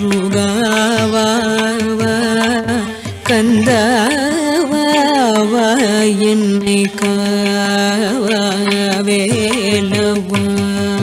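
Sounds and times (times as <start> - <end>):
tanpura drone: 0.0 - 11.0.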